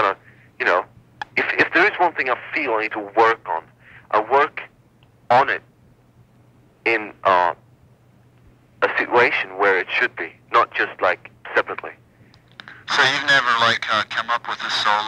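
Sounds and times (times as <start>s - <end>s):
person talking over telephone line: 0.0s - 4.7s, 5.3s - 5.7s, 6.9s - 7.6s, 8.8s - 12.0s, 12.6s - 15.0s
steady low hum: 0.0s - 15.0s.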